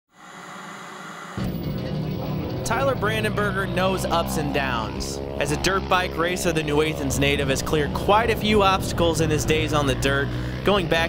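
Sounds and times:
music: 0:01.4 - 0:10.6.

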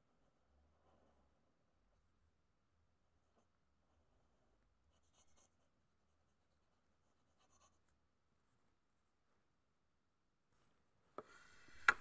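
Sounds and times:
marker scratching on paper: 0:04.9 - 0:05.7, 0:07.0 - 0:07.9.

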